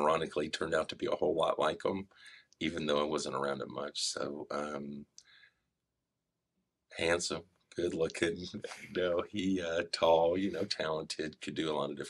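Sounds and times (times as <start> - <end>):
man breathing: 2.1 - 2.6, 5.2 - 5.8.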